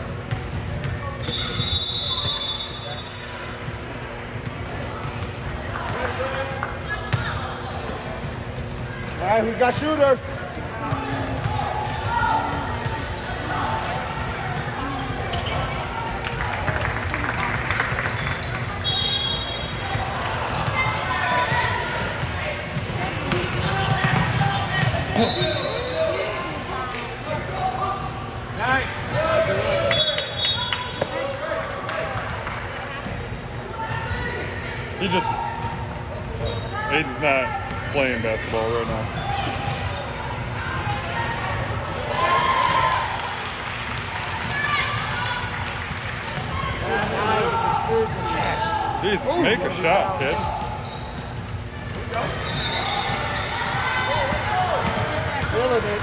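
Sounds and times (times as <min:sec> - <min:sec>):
voices in indoor hall: 0:00.0 - 0:56.0.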